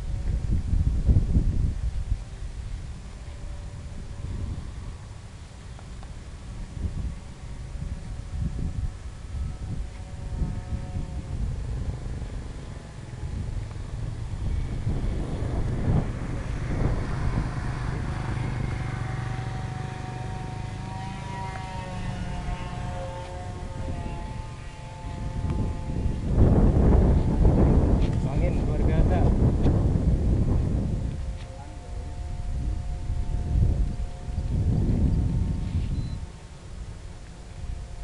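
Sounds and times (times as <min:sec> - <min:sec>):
model plane motors whining: 0:00.0 - 0:38.0
wind rumbling on microphone: 0:00.0 - 0:38.0.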